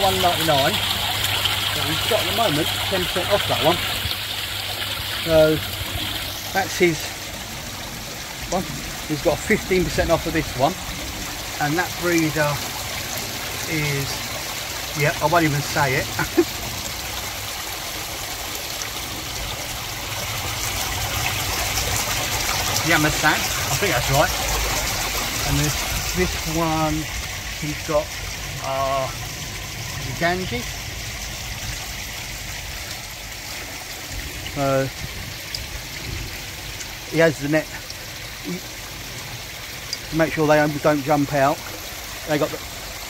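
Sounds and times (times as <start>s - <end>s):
water trickling and splashing: 0.0s - 43.0s.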